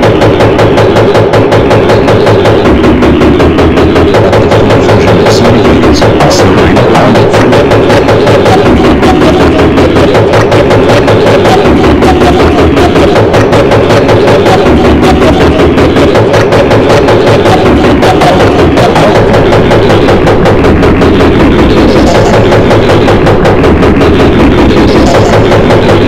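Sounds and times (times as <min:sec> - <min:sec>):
remix music with fast beat: 0:00.0 - 0:26.0.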